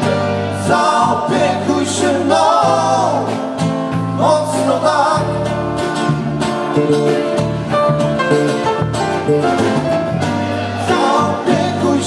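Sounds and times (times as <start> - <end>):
electric bass: 0.0 - 12.0
keyboard: 0.0 - 12.0
strummed acoustic guitar: 0.0 - 12.0.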